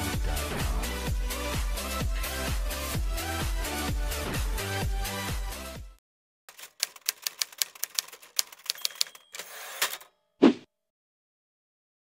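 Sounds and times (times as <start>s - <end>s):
typewriter key strikes: 6.5s - 10.1s.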